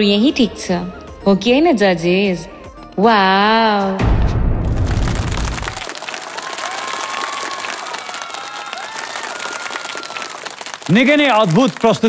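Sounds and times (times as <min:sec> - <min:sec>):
audience applauding: 0:04.7 - 0:12.0
cheering voices: 0:05.6 - 0:12.0.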